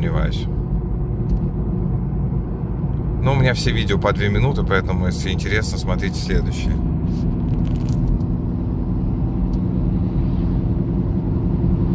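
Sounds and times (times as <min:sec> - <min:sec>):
car driving on asphalt: 0:00.0 - 0:11.9.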